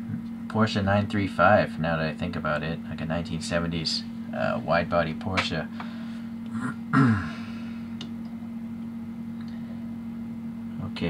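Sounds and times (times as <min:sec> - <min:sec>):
low electrical hum: 0:00.0 - 0:11.0
man clearing his throat: 0:06.5 - 0:07.6.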